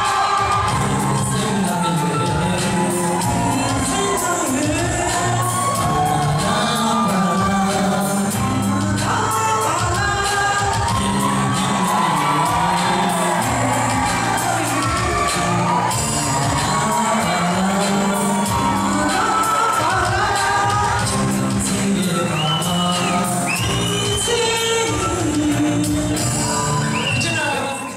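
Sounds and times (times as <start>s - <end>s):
men singing: 0.0s - 26.8s
audience shouts and whoops: 0.0s - 27.9s
live pop band playing: 0.0s - 27.9s.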